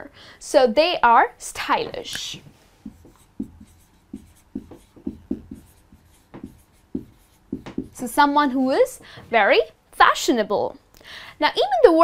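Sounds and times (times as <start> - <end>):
marker pen writing on whiteboard: 1.8 - 8.5.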